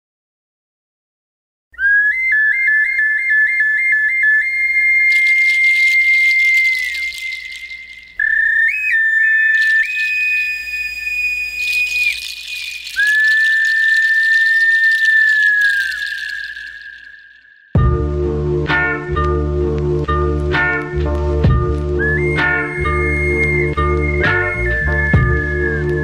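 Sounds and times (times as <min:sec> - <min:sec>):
high whistle melody: 0:01.8 - 0:19.8, 0:21.5 - 0:26.0.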